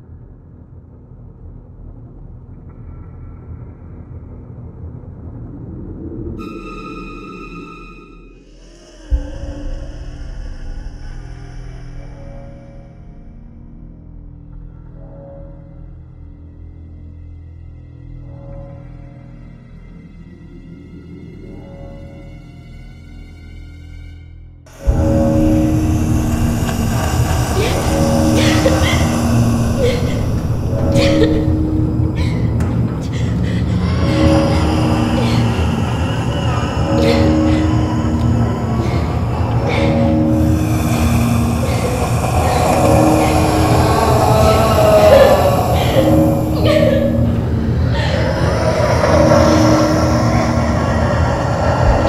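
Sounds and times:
low rumbling drone: 0.0 - 23.4, 24.5 - 52.0
woman's strained vocal cries: 26.0 - 50.8.

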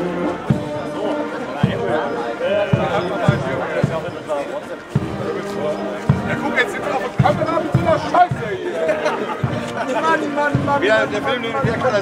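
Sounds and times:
marching band music: 0.0 - 12.0
people talking: 0.0 - 12.0.

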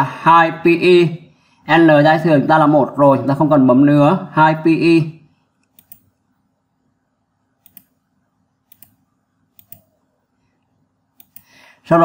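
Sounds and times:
faint mouse clicks: 7.6 - 8.0, 9.6 - 9.9, 10.6 - 11.6.

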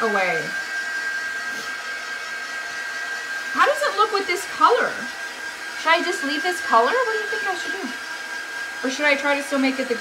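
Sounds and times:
heat tool blowing hot air: 0.0 - 10.0.

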